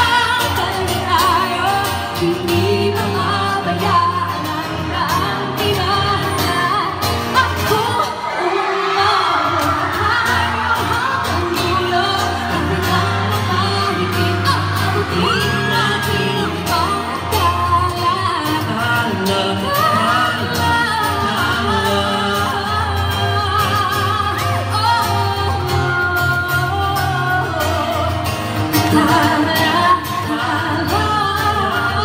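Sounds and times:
amplified pop backing music: 0:00.0 - 0:32.0
woman singing into a microphone: 0:00.0 - 0:32.0.

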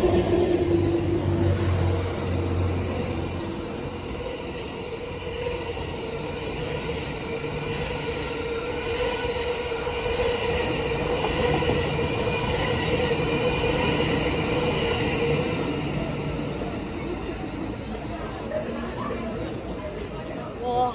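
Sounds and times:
train wheels rumbling on rails: 0:00.0 - 0:20.9.

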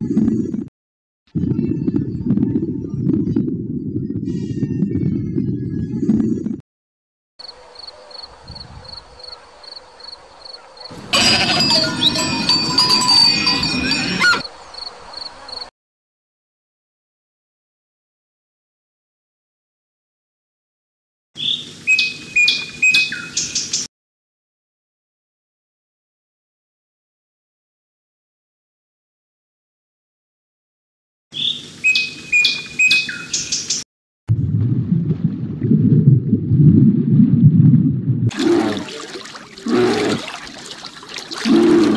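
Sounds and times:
crickets chirping: 0:07.4 - 0:12.2, 0:14.4 - 0:15.7
sheep bleat: 0:11.0 - 0:14.4
bird-like chirping: 0:21.4 - 0:23.9, 0:31.4 - 0:33.8.

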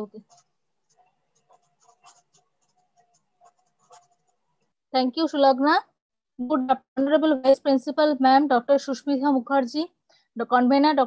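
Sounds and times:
small scratchy noises: 0:00.0 - 0:05.6.

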